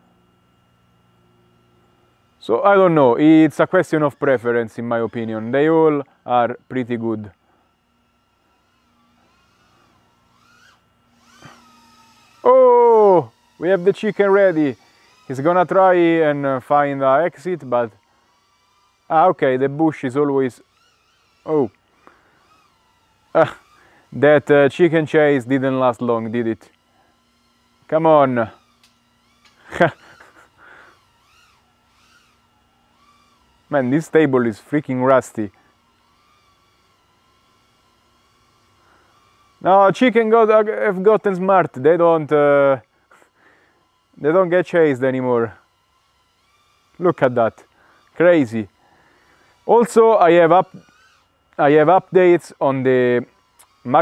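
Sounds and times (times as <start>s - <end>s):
faint drone motor whine: 0.0s - 54.0s.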